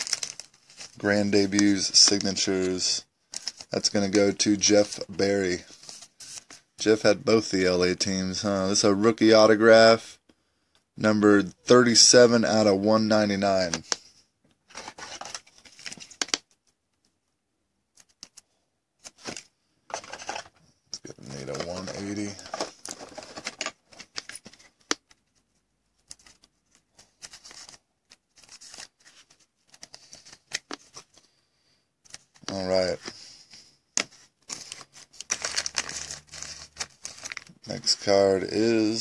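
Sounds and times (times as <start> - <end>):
plastic sleeve rustling and clicking: 0.0 - 4.2, 13.5 - 17.2, 17.9 - 31.3, 32.0 - 33.2, 33.9 - 38.7.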